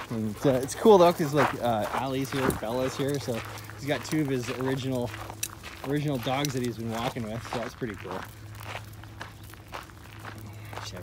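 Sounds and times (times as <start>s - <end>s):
footsteps crunching on gravel: 0.0s - 11.0s
low hum: 0.0s - 11.0s.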